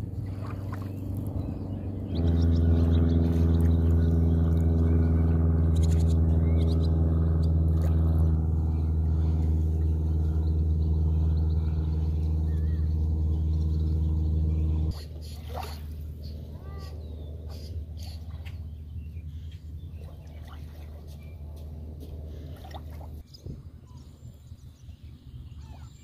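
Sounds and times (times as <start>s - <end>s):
low motor hum: 0.0s - 26.0s.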